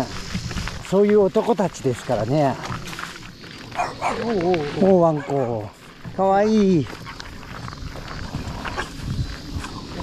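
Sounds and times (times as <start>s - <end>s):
dog barking or growling: 3.8s - 4.4s, 5.0s - 5.7s.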